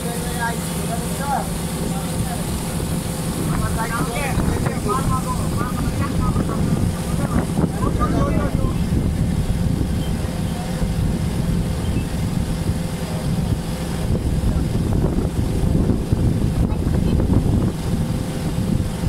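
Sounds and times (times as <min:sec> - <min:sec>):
boat engine droning: 0:00.0 - 0:19.0
water noise: 0:00.0 - 0:19.0
wind: 0:00.0 - 0:19.0.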